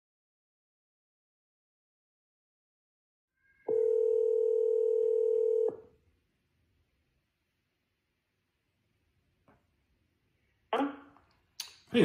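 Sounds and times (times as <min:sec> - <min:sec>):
telephone ringback tone: 0:03.7 - 0:05.8.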